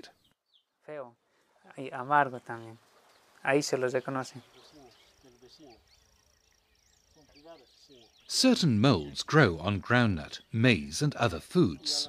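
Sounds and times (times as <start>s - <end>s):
high-pitched insect trill: 4.4s - 8.2s
man talking: 7.2s - 12.0s.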